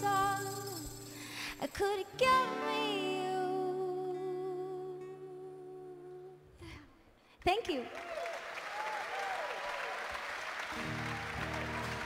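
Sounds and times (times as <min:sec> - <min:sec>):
acoustic guitar: 0:00.0 - 0:06.7.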